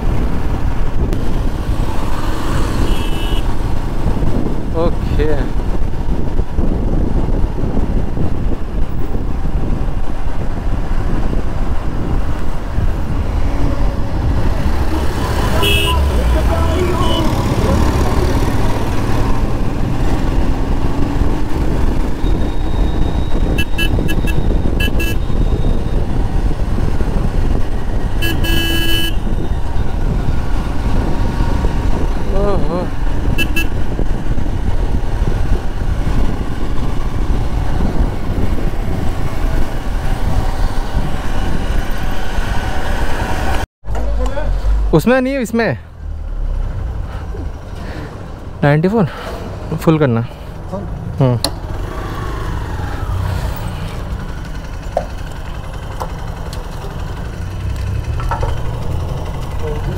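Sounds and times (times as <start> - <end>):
road and wind noise: 0.0 - 59.9
vehicle horns beeping: 2.7 - 3.6, 14.8 - 17.5, 22.2 - 25.7, 28.2 - 29.5, 33.3 - 33.8
motorcycle engine running: 51.5 - 59.9.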